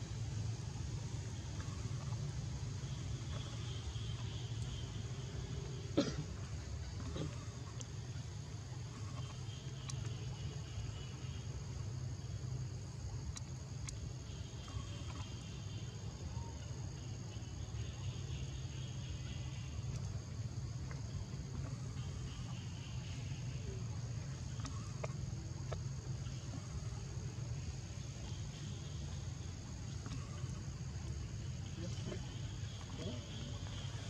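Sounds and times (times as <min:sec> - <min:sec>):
faint clicks: 0:09.1 - 0:10.3, 0:13.2 - 0:15.4
insect trilling: 0:14.2 - 0:34.0.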